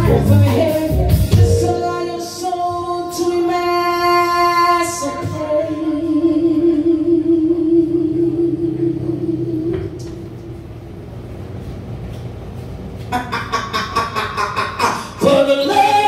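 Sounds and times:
band holding long note: 1.3s - 3.1s.

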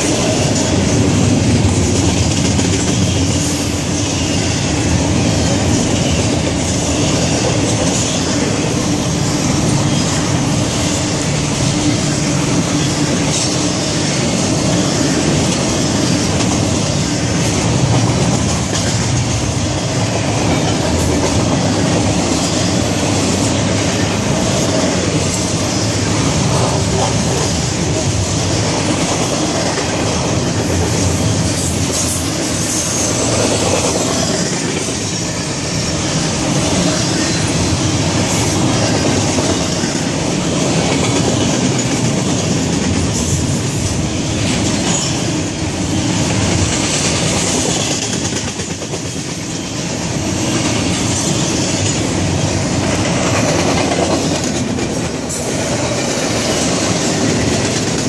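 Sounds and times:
train wheels on rails: 0.0s - 58.0s.

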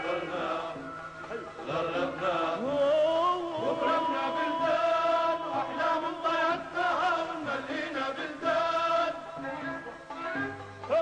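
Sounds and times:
men singing held notes: 0.0s - 9.9s
folk band accompaniment: 0.0s - 11.0s.

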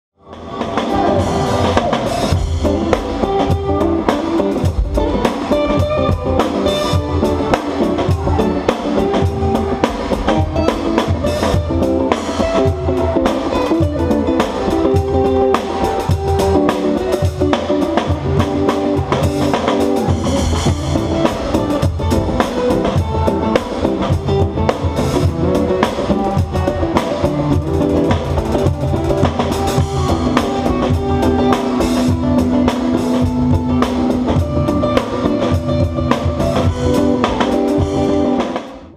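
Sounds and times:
bass: 0.1s - 38.9s
drum kit playing a groove: 0.2s - 38.9s
guitar: 0.2s - 38.9s.

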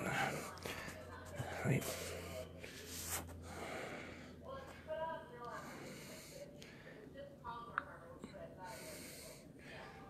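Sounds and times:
man breathing: 0.0s - 4.8s
low steady hum: 0.0s - 10.0s.

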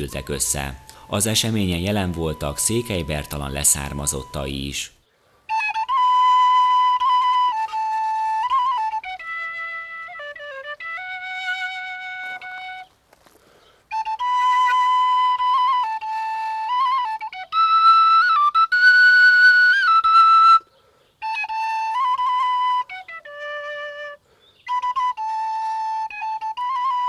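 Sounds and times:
wooden flute notes: 0.0s - 4.7s, 5.4s - 27.0s
breath: 0.9s - 1.1s, 5.0s - 5.5s, 13.2s - 13.9s, 20.7s - 21.2s, 24.2s - 24.6s.

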